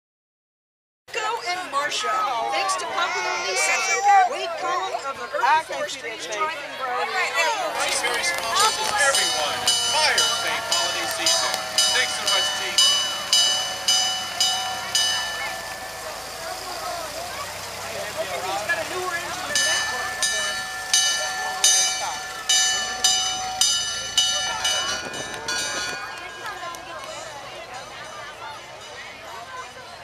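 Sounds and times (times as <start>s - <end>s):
crowd voices: 1.1s - 30.0s
bell struck rapidly: 7.8s - 29.8s.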